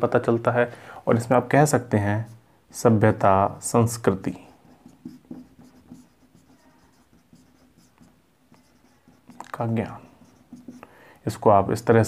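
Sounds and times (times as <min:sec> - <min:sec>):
marker scratching on whiteboard: 0:03.9 - 0:10.9.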